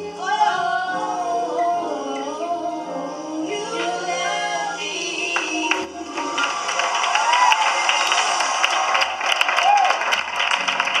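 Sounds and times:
recorded vocal music: 0.0s - 8.9s
audience clapping and cheering: 5.4s - 11.0s
voice whoops: 6.3s - 10.1s.

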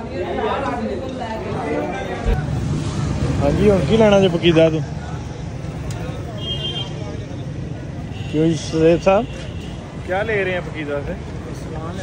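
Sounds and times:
low traffic rumble: 0.8s - 12.0s.

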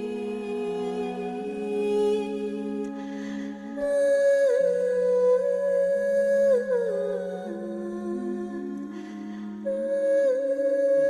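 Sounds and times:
person humming long notes: 0.0s - 11.0s.

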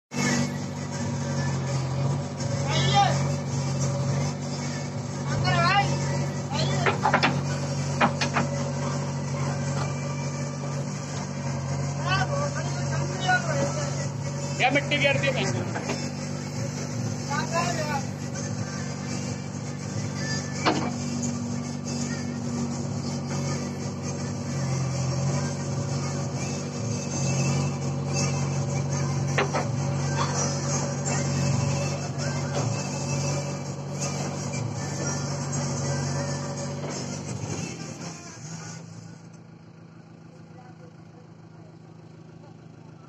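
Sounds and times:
hydraulic digging arm working: 0.1s - 38.8s
diesel engine running: 0.1s - 43.0s.

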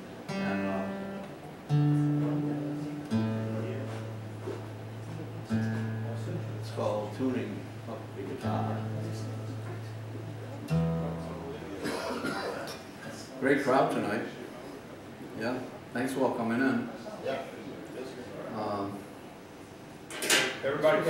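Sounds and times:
acoustic guitar chords ringing: 0.0s - 12.9s.

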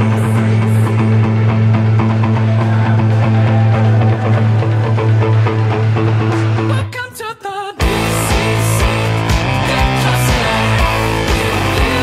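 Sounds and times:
electric guitar low note: 7.8s - 12.0s
steady drum beat: 7.8s - 12.0s.

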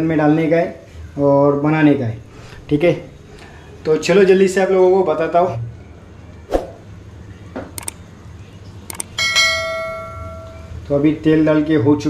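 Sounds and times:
mouse click: 7.8s - 8.0s, 8.9s - 9.1s
bright bell ding: 9.2s - 10.8s.

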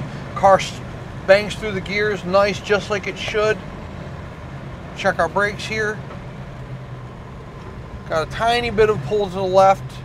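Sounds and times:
car engine droning: 0.0s - 10.0s
road noise inside car: 0.0s - 10.0s.

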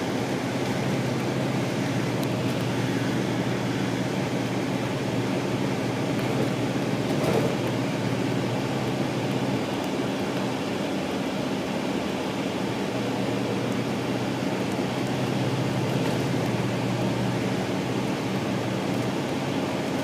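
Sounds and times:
diesel engine droning: 0.0s - 20.0s
road and cabin noise: 0.0s - 20.0s.

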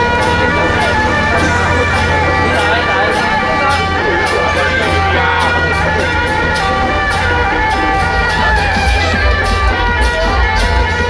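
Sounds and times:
crisp percussion strokes: 0.0s - 11.0s
crowd talking: 0.0s - 11.0s
long reedy held tones: 0.0s - 11.0s.

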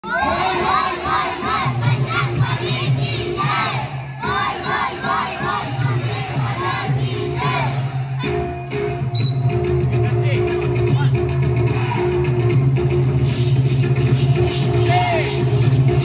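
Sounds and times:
children chanting: 0.0s - 8.5s.

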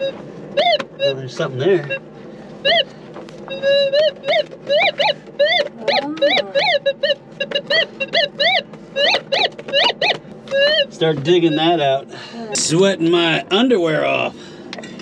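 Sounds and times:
metal detector warbling beeps: 0.0s - 2.0s, 2.6s - 12.0s.

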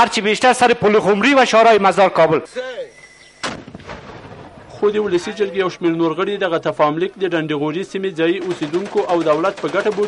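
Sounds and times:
mortar firing: 3.4s - 4.7s
echo of mortar report: 8.2s - 10.0s.

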